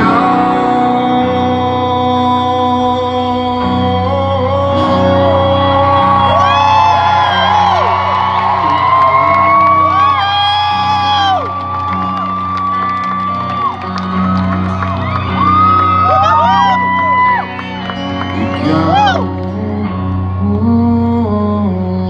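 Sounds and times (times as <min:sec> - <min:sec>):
live rock band with acoustic guitar: 0:00.0 - 0:22.0
fans whooping and cheering: 0:05.1 - 0:19.5.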